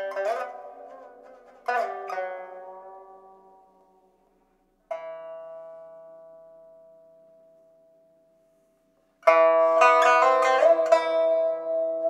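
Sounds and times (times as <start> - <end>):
plucked pipa note: 0.0 - 12.0.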